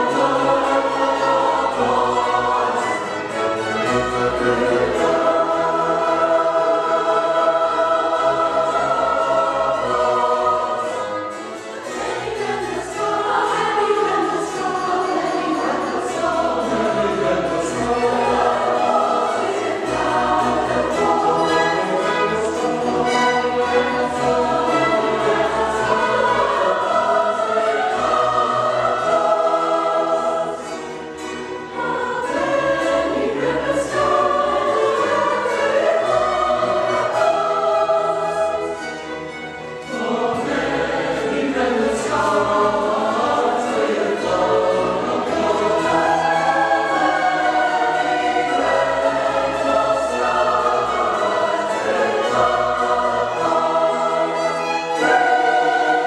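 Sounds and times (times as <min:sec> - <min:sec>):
mixed choir singing: 0:00.0 - 0:56.0
string orchestra: 0:00.0 - 0:56.0.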